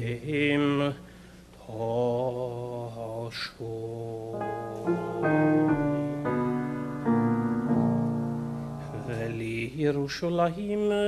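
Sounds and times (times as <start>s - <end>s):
man singing long notes: 1.6s - 6.3s, 8.7s - 11.0s
piano chords: 4.2s - 10.0s.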